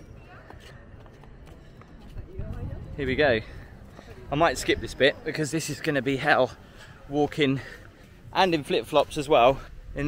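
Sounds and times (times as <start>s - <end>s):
wind rumbling on microphone: 2.0s - 5.0s.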